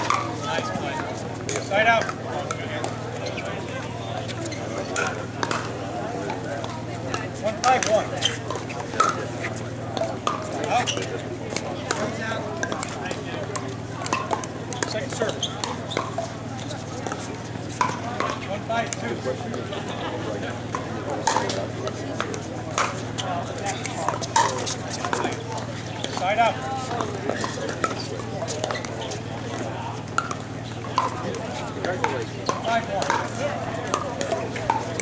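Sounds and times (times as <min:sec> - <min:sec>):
murmuring voices: 0:00.0 - 0:35.0.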